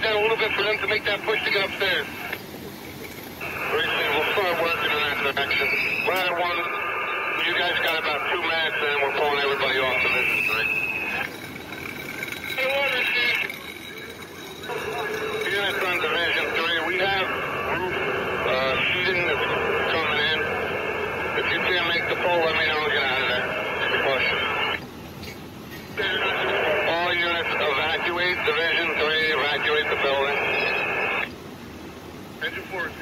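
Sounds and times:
tinny radio voices: 0.0s - 24.8s, 25.8s - 31.4s, 32.4s - 33.0s
short high radio tone: 3.4s - 11.6s, 26.0s - 31.3s.

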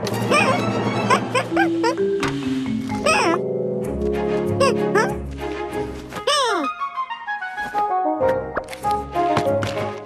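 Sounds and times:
cartoon background music: 0.0s - 10.0s
squeaky cartoon creature vocals: 0.3s - 2.0s, 3.0s - 3.4s.

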